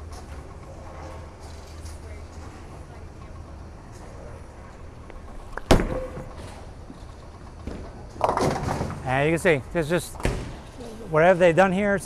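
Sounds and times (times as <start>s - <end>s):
bowling ball rolling: 4.2s - 9.1s.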